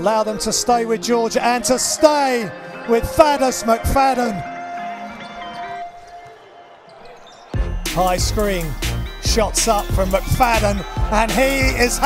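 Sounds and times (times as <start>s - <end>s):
music with heavy bass beat: 7.6s - 12.0s.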